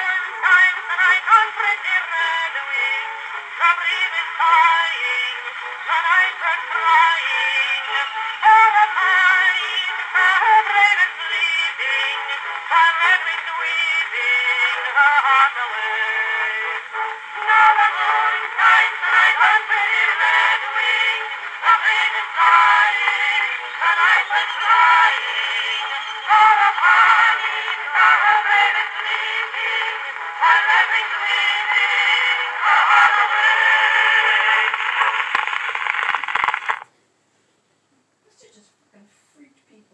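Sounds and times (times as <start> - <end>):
old phonograph recording of song: 0.0 - 36.9.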